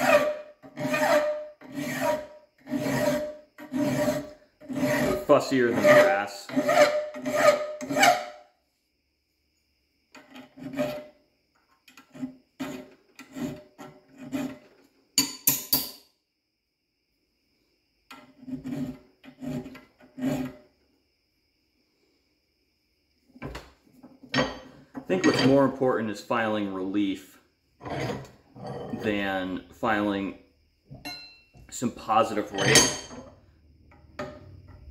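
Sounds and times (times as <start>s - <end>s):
hand file rasping on steel: 0.0s - 8.4s, 10.4s - 11.1s, 12.0s - 14.7s, 18.4s - 20.6s.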